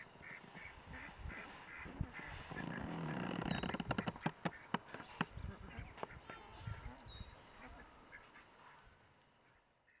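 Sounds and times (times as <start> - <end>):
ducks quacking faintly: 0.0 - 10.0.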